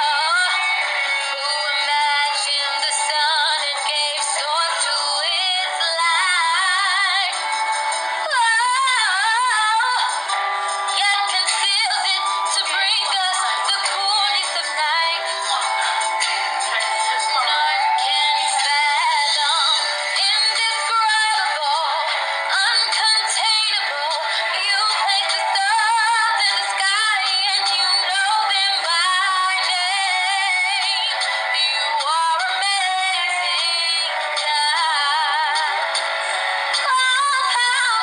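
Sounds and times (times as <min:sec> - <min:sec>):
woman singing with vibrato: 0:00.0 - 0:07.5, 0:08.2 - 0:36.0, 0:36.8 - 0:38.0.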